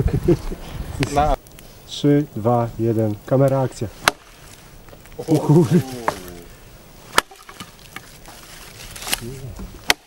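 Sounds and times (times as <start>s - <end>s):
machete chopping branches: 4.0s - 4.5s, 7.1s - 10.0s.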